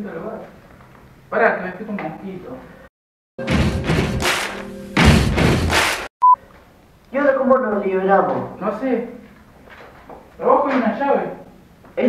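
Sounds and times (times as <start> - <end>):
ringing musical tone: 3.4 - 5.1
heavy booming hits: 3.4 - 6.1.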